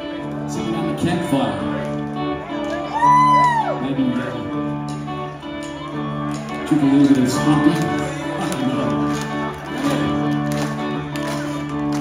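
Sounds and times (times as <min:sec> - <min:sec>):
electric guitars ringing chords: 0:00.0 - 0:12.0.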